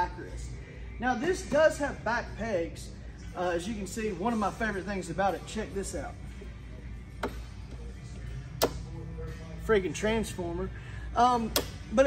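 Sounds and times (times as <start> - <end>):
foot peg clicking into position: 8.6 - 8.9.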